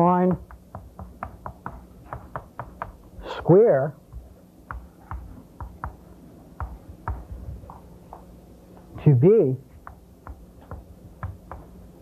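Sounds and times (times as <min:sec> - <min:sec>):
chalk tapping on blackboard: 0:00.3 - 0:03.2, 0:04.0 - 0:09.0, 0:09.7 - 0:11.8.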